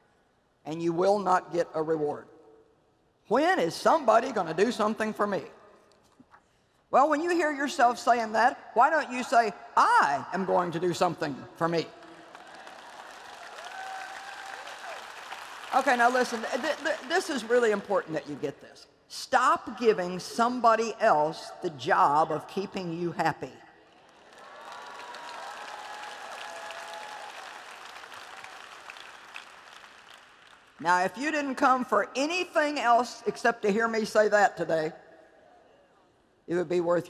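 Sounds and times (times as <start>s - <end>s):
audience applauding: 12.0s - 18.0s, 24.0s - 30.8s.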